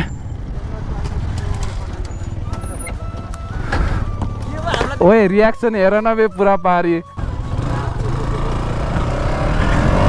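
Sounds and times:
motorcycle engine: 0.0s - 5.0s, 7.0s - 10.0s.

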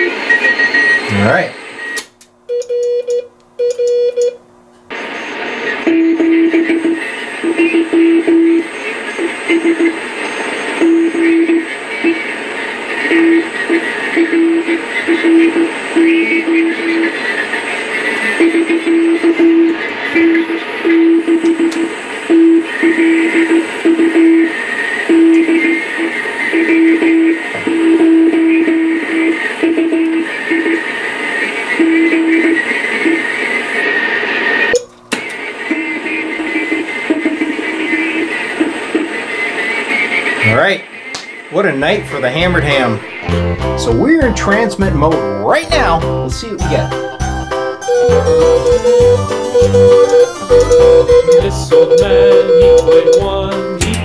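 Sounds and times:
radio band hiss: 0.0s - 2.1s, 4.9s - 54.0s
morse code beeps: 1.8s - 4.4s, 5.2s - 12.2s, 13.1s - 17.1s, 18.3s - 24.5s, 25.1s - 30.8s, 41.8s - 54.0s
short higher beeps: 46.9s - 53.5s.

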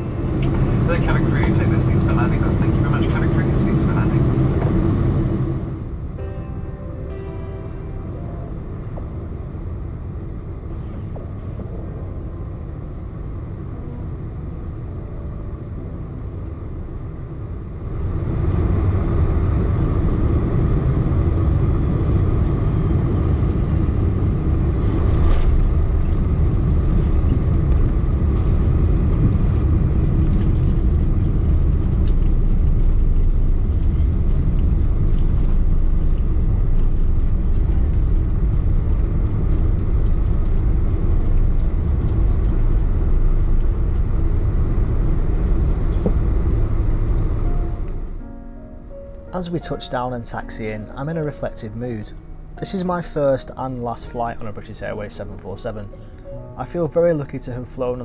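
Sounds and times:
jet engines roaring: 0.0s - 6.2s, 16.6s - 48.2s
deep runway rumble: 0.0s - 58.0s.

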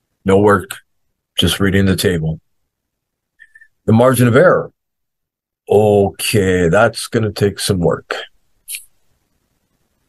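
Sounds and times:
man speaking: 0.2s - 2.4s, 3.4s - 4.7s, 5.7s - 8.9s.

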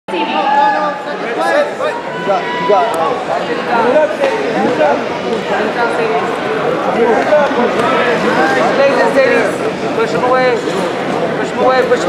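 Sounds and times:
people talking and calling out: 0.1s - 12.0s.

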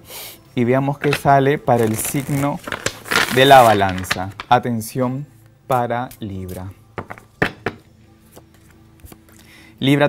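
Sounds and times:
faint background music: 0.0s - 10.0s
cards tapping on wooden table: 7.0s - 7.8s.

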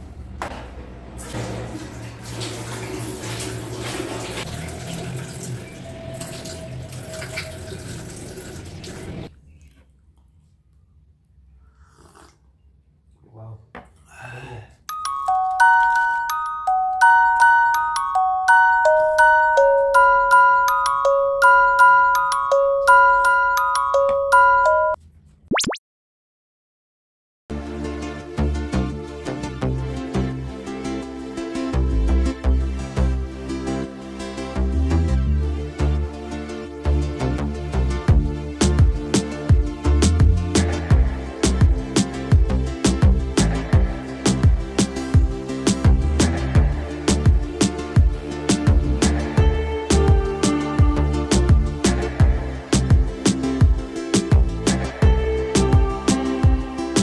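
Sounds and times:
tap water running into sink: 1.2s - 9.3s
water splashing: 1.2s - 9.3s
mallet percussion music: 14.9s - 25.0s.

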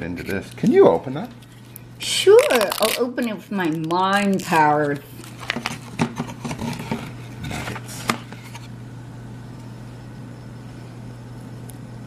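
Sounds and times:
steady low hum: 0.0s - 12.0s
food packaging clicks and rustles: 2.4s - 8.6s.

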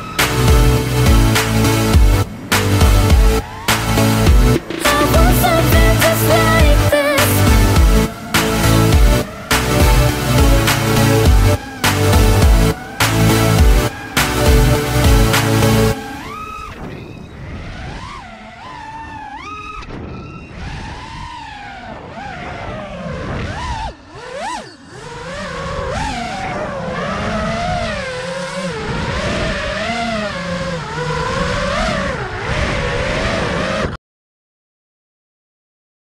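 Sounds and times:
drone motors and propellers whining: 0.0s - 34.0s.

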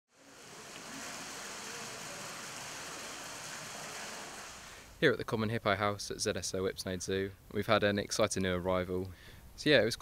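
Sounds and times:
water rushing: 0.1s - 5.0s.

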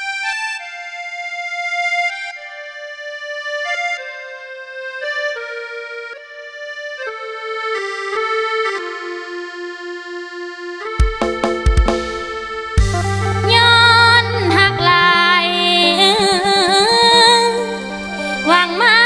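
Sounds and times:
reedy keyboard melody: 0.0s - 19.0s
drums and bass: 11.0s - 15.0s.

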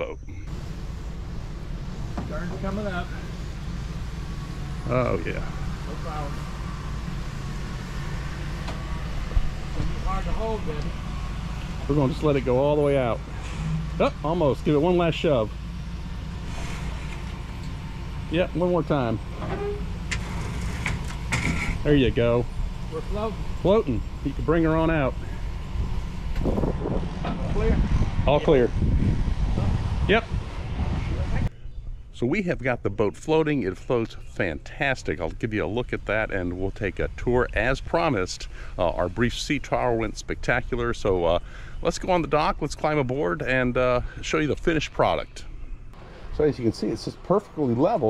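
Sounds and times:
low rumble: 0.0s - 32.8s
truck engine idling: 0.0s - 48.0s.

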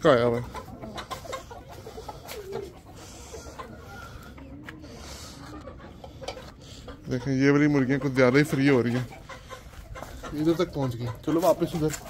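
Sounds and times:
chickens clucking: 0.0s - 12.0s
chicken call: 0.8s - 6.6s.

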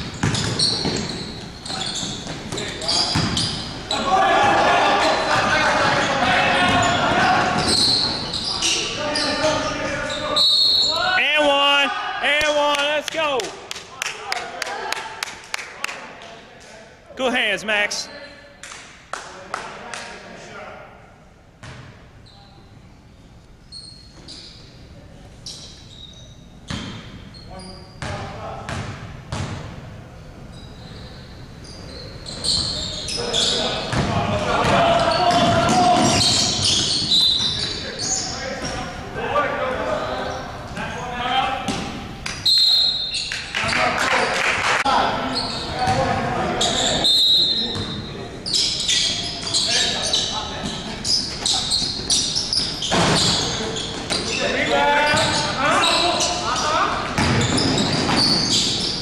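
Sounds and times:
basketball bouncing on wood floor: 0.0s - 1.1s, 3.1s - 3.4s, 33.9s - 36.4s, 57.2s - 58.4s.

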